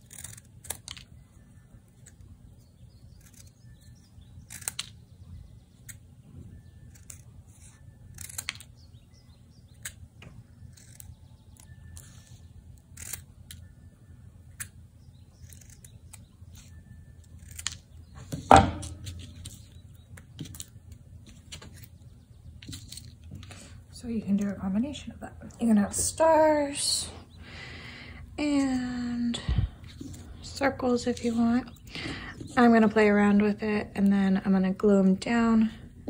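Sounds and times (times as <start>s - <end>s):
scissors snipping paper: 0.0s - 1.1s, 4.4s - 5.0s, 6.9s - 8.8s, 10.7s - 13.6s, 15.4s - 17.9s.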